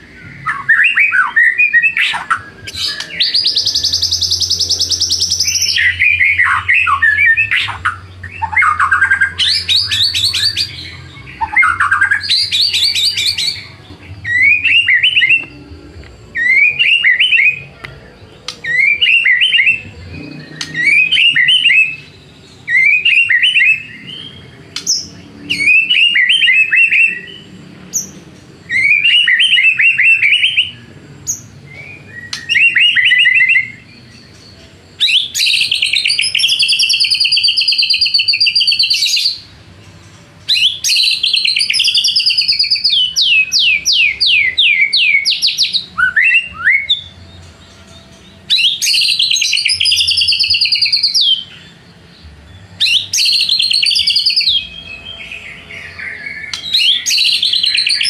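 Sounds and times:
bird whistled phrases: 0.0s - 15.7s, 16.4s - 17.8s, 18.5s - 27.4s, 28.7s - 30.8s, 31.7s - 33.8s, 35.0s - 39.4s, 40.5s - 47.2s, 48.5s - 51.6s, 52.8s - 58.0s.

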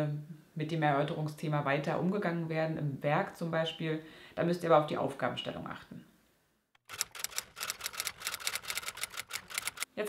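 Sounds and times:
typewriter keystroke clicks: 6.8s - 9.9s.

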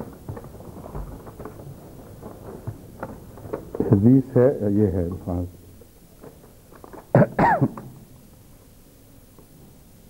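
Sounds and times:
man coughing into microphone: 7.2s - 7.9s.

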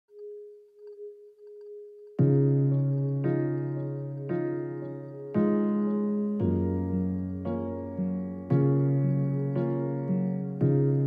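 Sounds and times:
sustained electronic tone: 0.1s - 7.2s.

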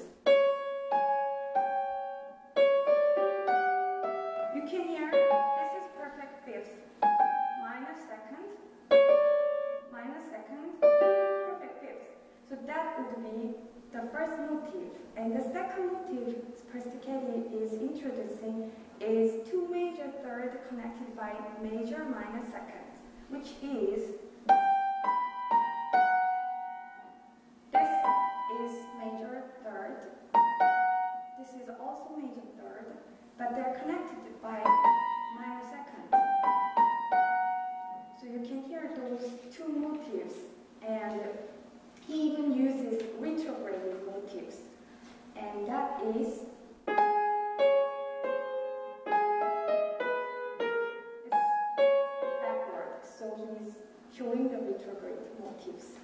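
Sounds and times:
piano notes ringing: 0.0s - 10.0s, 10.7s - 11.8s, 24.4s - 31.6s, 34.3s - 38.4s, 45.8s - 53.1s.

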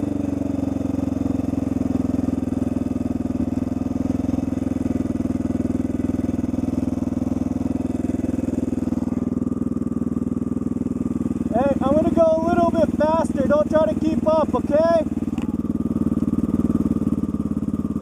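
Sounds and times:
motorcycle engine running: 0.0s - 18.0s.

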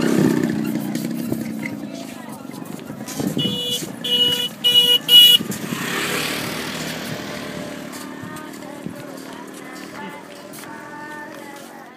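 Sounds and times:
vehicle horn short beeps: 3.4s - 5.5s.

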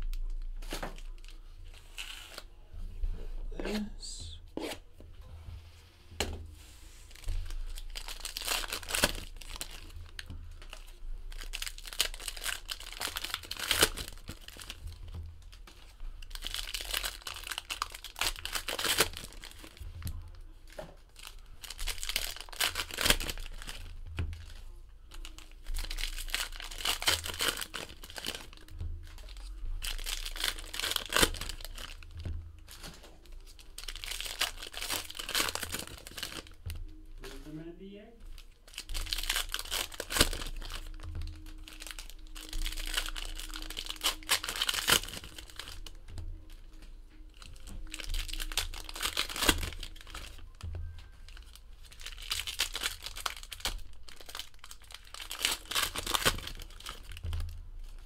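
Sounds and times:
wrappers crinkling: 0.0s - 2.5s, 6.7s - 58.0s
foil card packs tearing: 7.1s - 15.0s, 15.8s - 20.0s, 21.2s - 24.5s, 25.1s - 36.6s, 38.7s - 46.0s, 47.4s - 57.5s.

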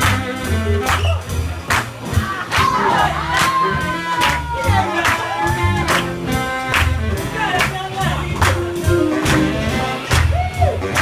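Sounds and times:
swing big band playing: 0.0s - 11.0s
crowd whooping: 2.1s - 6.1s, 10.1s - 11.0s.

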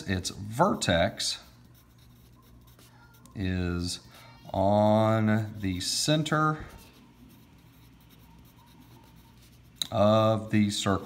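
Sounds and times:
pencil writing on paper: 1.4s - 3.4s, 6.7s - 10.2s.

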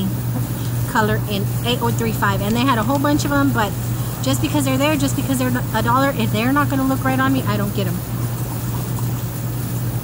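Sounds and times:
air conditioner unit humming: 0.0s - 10.0s.

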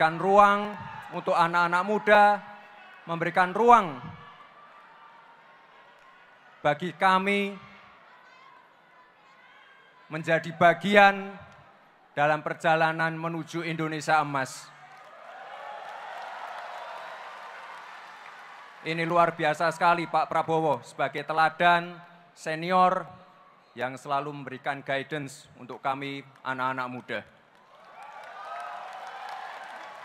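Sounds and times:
man's amplified speech: 0.0s - 4.1s, 6.6s - 7.7s, 10.1s - 11.5s, 12.2s - 14.7s, 18.8s - 23.2s, 23.8s - 27.3s
crowd applauding: 0.0s - 8.2s, 14.8s - 20.3s, 27.4s - 30.0s
faint hall ambience: 0.0s - 30.0s.

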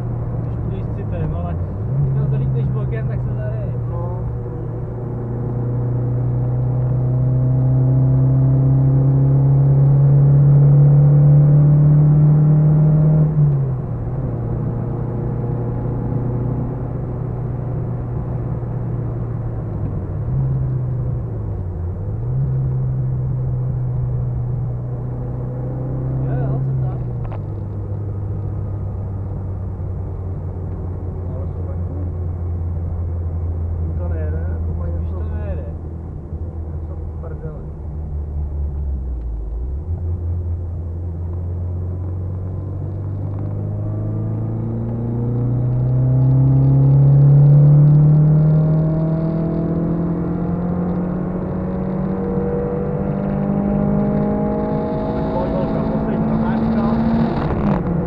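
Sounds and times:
car engine from inside cabin: 0.0s - 58.0s.

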